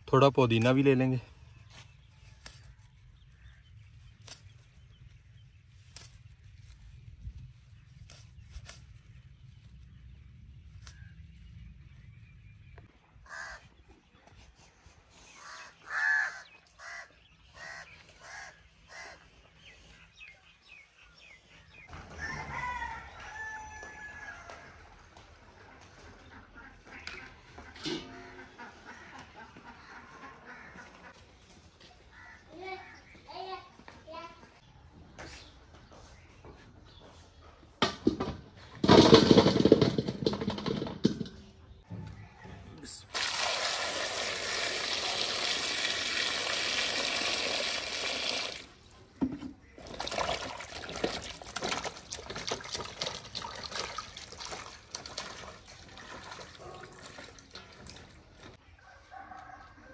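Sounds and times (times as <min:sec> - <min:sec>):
rooster crowing: 0:21.9 - 0:24.8, 0:58.8 - 0:59.9
chickens clucking: 0:25.5 - 0:31.2.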